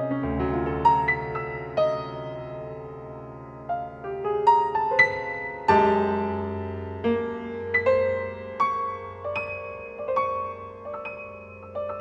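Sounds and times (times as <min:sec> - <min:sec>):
slow solo piano piece: 0:00.0 - 0:12.0.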